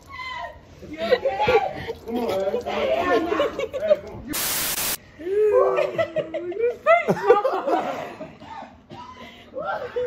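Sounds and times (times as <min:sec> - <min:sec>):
static-like hiss burst: 0:04.4 - 0:05.0.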